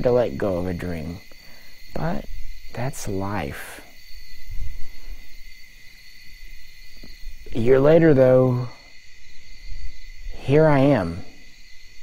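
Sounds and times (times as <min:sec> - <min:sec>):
high insect trilling: 0:00.0 - 0:12.0.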